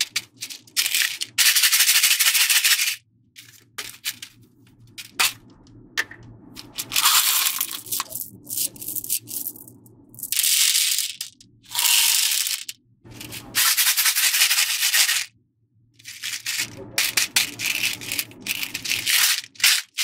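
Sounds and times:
beads rattling into plastic tray: 0:00.0 - 0:05.4, 0:06.6 - 0:15.3, 0:16.0 - 0:20.0.

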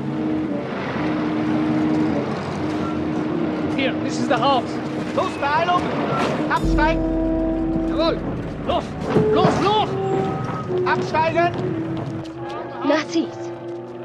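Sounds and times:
truck engine rumble: 0:06.6 - 0:12.2.

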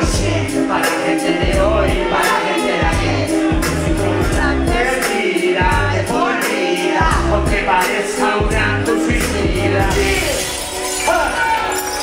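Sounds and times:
hip hop music over pa: 0:00.0 - 0:12.0.

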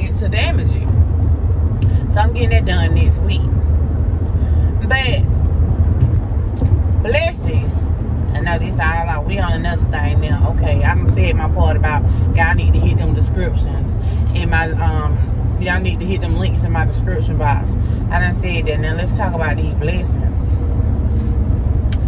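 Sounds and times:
woman talking: 0:00.0 - 0:01.0, 0:01.8 - 0:03.5, 0:04.8 - 0:05.3, 0:07.0 - 0:20.5
car cabin engine rumble: 0:00.0 - 0:22.0.

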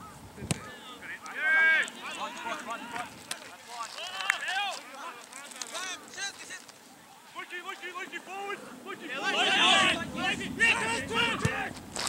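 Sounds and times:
players shouting calls: 0:00.0 - 0:11.9.

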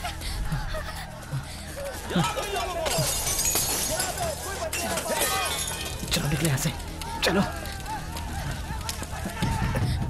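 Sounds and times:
people shouting: 0:01.2 - 0:06.0, 0:06.7 - 0:10.0.

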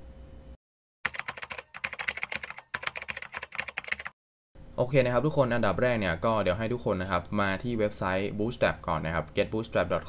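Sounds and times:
computer keyboard typing: 0:01.0 - 0:04.2.

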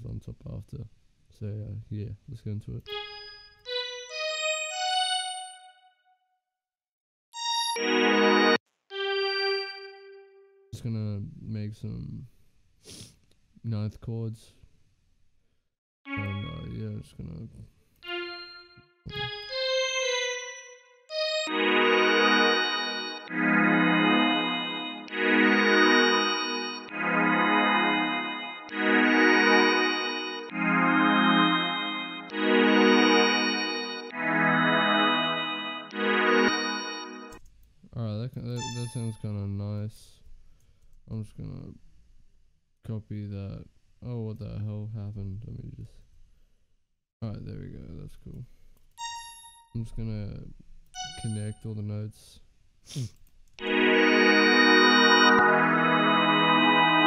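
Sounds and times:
synth notes stacking into a chord: 0:16.1 - 0:17.0, 0:18.0 - 0:37.4, 0:53.6 - 0:57.0.

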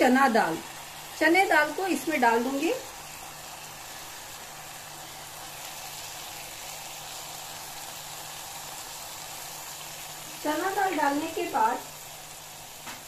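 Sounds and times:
sauce sizzling in a pot: 0:00.0 - 0:13.0.

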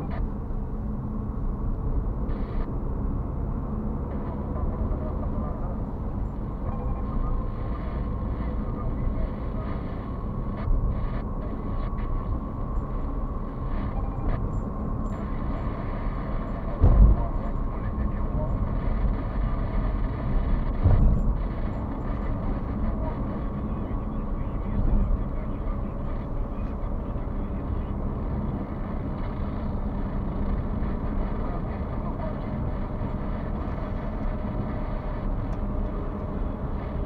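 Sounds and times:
road and engine rumble in car: 0:00.0 - 0:37.0.

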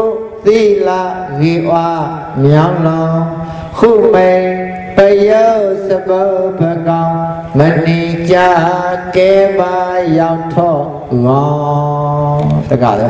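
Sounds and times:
man chanting in long notes: 0:00.0 - 0:13.0.

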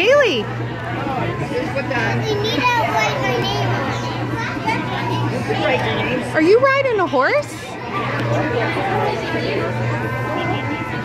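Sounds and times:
children chattering and calling out: 0:00.0 - 0:11.0
steady low hum: 0:00.0 - 0:11.0.

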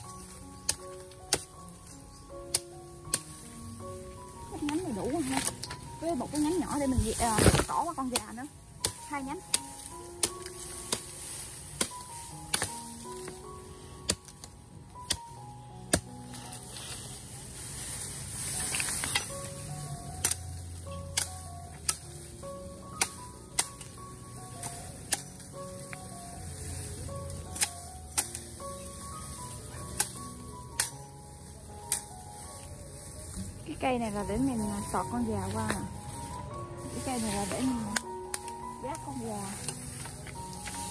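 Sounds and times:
background music: 0:00.0 - 0:40.9
machete chopping bamboo: 0:11.8 - 0:13.4, 0:14.0 - 0:15.3, 0:21.1 - 0:22.0, 0:23.0 - 0:23.9, 0:25.0 - 0:25.4, 0:27.5 - 0:28.5, 0:30.8 - 0:31.0.

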